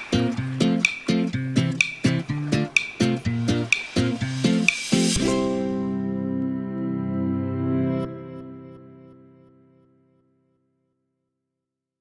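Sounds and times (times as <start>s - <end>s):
sharp tick: 0.0s - 5.2s
plucked string music with beat: 0.0s - 9.2s.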